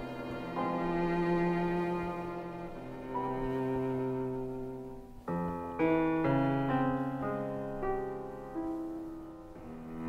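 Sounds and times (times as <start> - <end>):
piano chord: 0.0 - 10.0
violin cello and piano trio: 0.0 - 10.0.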